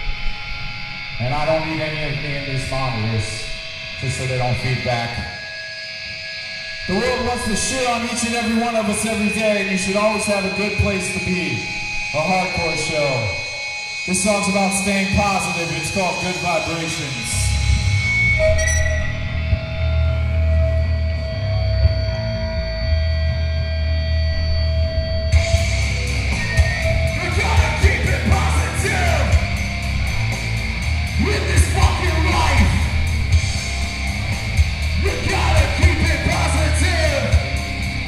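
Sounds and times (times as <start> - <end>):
drums: 24.8 - 38.0
punk band playing live: 25.3 - 38.0
shouted vocals: 27.0 - 29.6, 31.1 - 33.0, 34.9 - 37.6.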